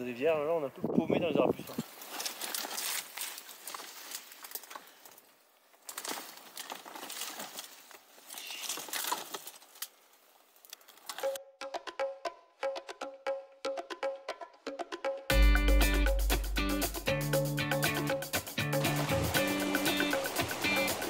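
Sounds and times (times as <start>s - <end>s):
branches rustling and snapping: 1.7s - 11.4s
music with plucked notes: 11.3s - 21.0s.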